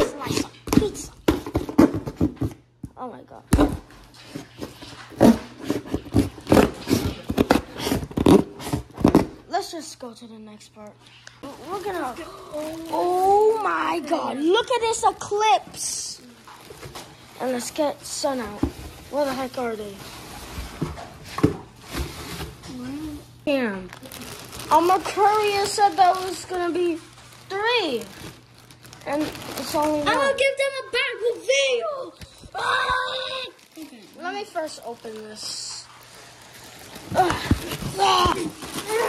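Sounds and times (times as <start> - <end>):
tissue paper rustling: 11.4 - 14.8, 16.0 - 21.1, 23.9 - 30.7, 32.6 - 39.0.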